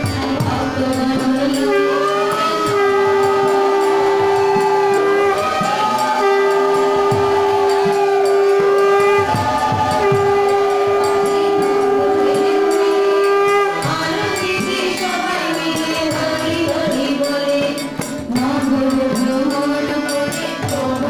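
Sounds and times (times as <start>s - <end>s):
group singing: 0.0s - 21.0s
hand drum strokes: 0.0s - 21.0s
harmonium chords: 0.0s - 21.0s.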